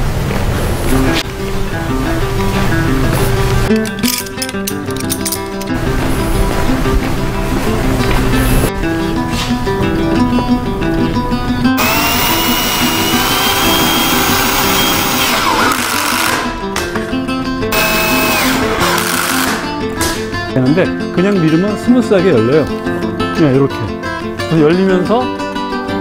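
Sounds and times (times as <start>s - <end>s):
background music: 0.9s - 26.0s
cordless drill whining: 11.8s - 16.7s, 17.7s - 19.8s.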